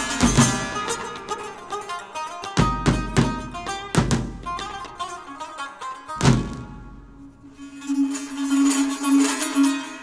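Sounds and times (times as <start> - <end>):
plucked string folk music: 0.0 - 10.0.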